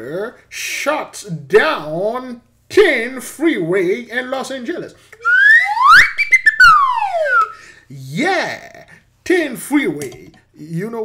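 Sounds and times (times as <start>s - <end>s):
whistled glide falling in pitch: 5.2s - 7.6s.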